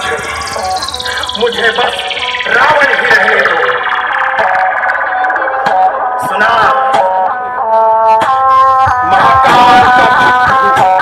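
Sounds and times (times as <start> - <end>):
loud dance remix music: 0.0 - 7.3
stepped lead melody: 0.0 - 8.8.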